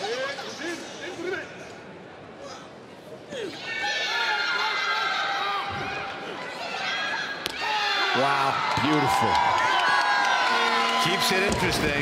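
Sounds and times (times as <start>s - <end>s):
crowd shouting and cheering: 3.5s - 12.0s.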